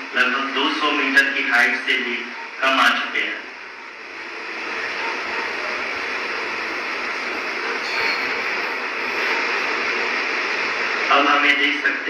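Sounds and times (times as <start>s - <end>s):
steady rushing noise: 2.9s - 12.0s.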